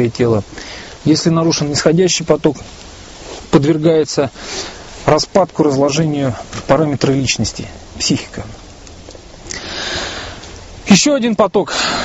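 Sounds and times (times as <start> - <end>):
man speaking: 0.0 - 2.7, 3.5 - 4.4, 5.0 - 8.6, 10.8 - 11.8
man inhaling: 0.5 - 1.0, 4.4 - 5.0, 9.5 - 10.5, 11.7 - 12.0.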